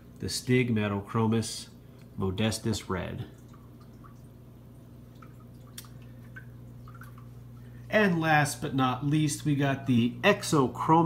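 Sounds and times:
aquarium water trickling: 0.0s - 11.0s
steady low hum: 0.0s - 11.0s
small water drips: 1.7s - 8.1s.

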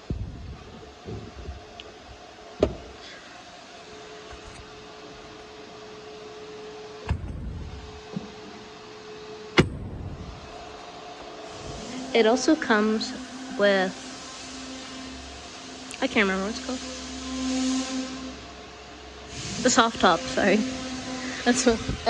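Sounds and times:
steady hum: 0.0s - 22.0s
knocks and clunks of panel: 2.6s - 2.9s.

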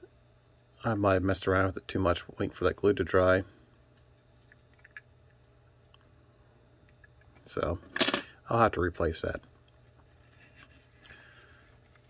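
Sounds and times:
faint low hum: 0.0s - 12.0s.

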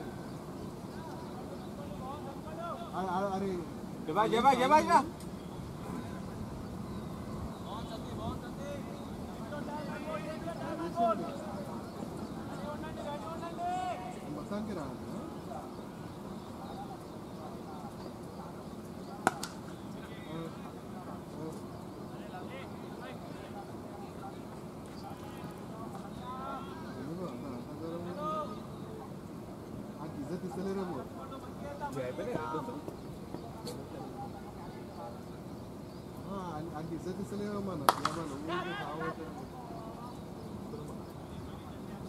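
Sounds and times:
distant voices: 0.0s - 42.0s
men calling: 0.9s - 6.6s, 7.5s - 29.2s, 36.2s - 42.0s
cricket bat hitting ball: 19.2s - 19.6s, 37.9s - 38.3s.

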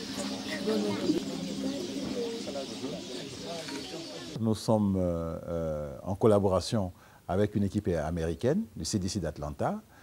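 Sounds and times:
bird calling: 0.0s - 4.4s
indistinct background voices: 0.0s - 4.4s.

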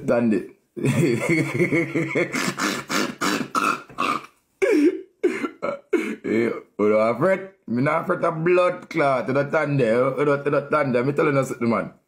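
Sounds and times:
man laughing heartily: 0.8s - 3.6s, 4.6s - 6.6s.

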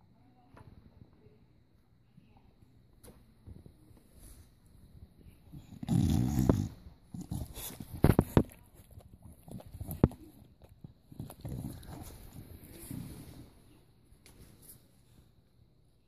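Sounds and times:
puppy growling and grunting: 5.6s - 8.6s, 11.0s - 13.2s.

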